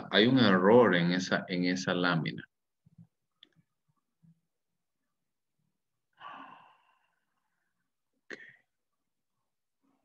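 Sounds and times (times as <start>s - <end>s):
person exhaling: 6.2s - 7.2s.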